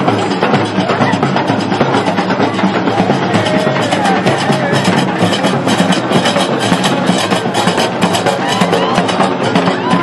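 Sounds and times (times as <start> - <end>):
large drums: 0.0 - 10.0.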